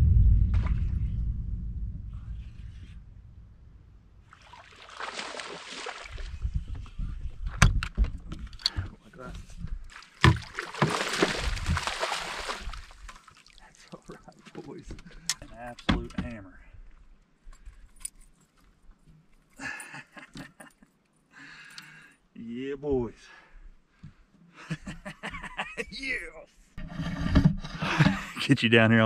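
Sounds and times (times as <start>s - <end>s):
fish splashing in water: 4.3s - 6.3s, 9.9s - 13.6s
knocks and rattles against boat: 14.6s - 16.4s.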